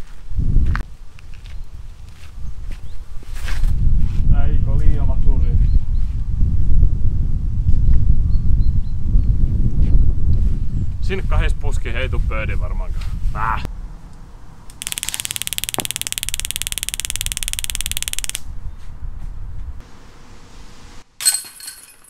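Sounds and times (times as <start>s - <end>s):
wind rumbling on microphone: 0.0s - 19.8s.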